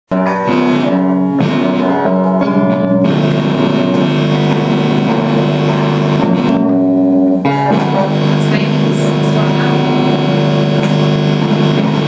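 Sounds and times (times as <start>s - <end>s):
electric guitar chords: 0.1s - 12.0s.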